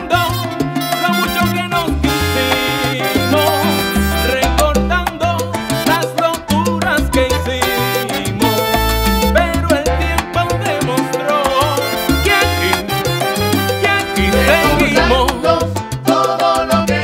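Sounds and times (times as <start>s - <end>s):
instrumental salsa music: 0.0s - 17.0s.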